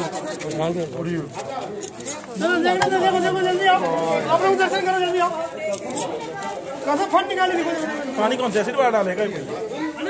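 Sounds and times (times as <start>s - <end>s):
people talking at once: 0.0s - 10.0s.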